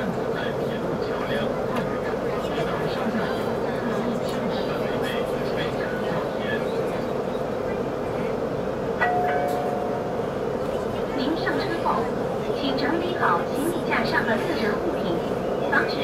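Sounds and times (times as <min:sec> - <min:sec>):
passengers talking: 0:00.0 - 0:16.0
train running hum: 0:00.0 - 0:16.0.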